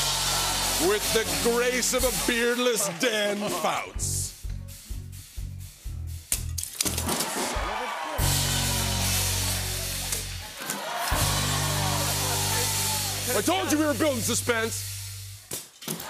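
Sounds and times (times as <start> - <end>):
upbeat music with bass beat: 0.0 - 15.4
bright hiss: 8.2 - 15.6.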